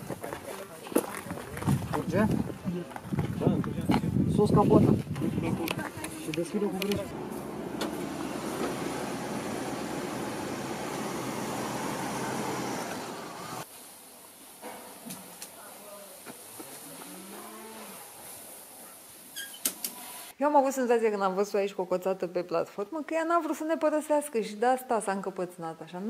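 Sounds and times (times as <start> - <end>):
pickup engine rough rumble: 7.0 - 13.6.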